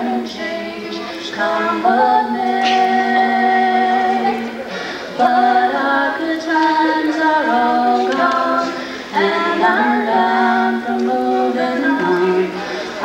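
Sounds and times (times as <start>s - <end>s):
woman singing slow song: 0.0s - 4.6s, 5.2s - 12.6s.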